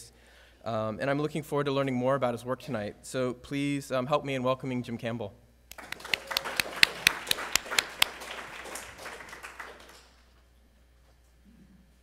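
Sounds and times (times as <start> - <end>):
audience applauding: 5.7 - 10.3.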